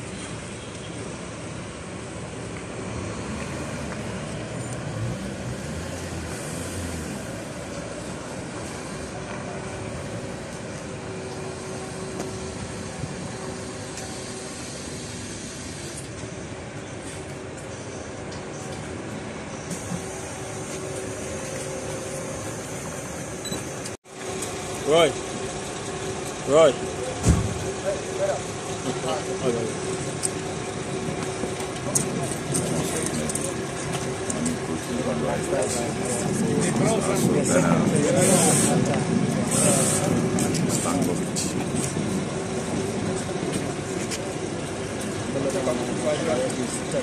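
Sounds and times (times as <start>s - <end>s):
bus engine running: 0.0s - 47.0s.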